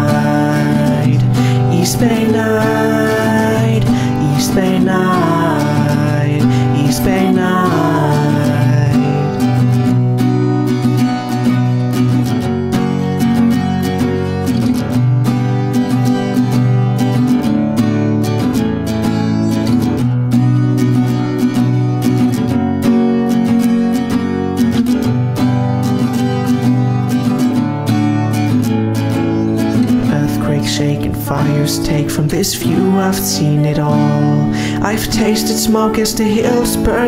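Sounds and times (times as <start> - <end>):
acoustic guitar strumming: 0.0 - 37.0.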